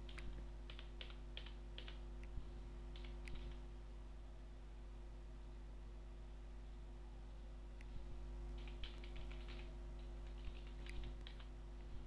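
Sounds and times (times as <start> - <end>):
low steady hum: 0.0 - 12.0
keyboard key clicks: 3.0 - 3.6, 8.6 - 11.5.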